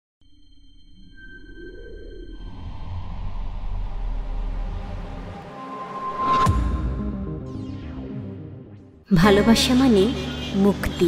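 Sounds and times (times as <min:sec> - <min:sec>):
high ringing tones: 0:00.2 - 0:02.9
deep rumble: 0:02.3 - 0:08.8.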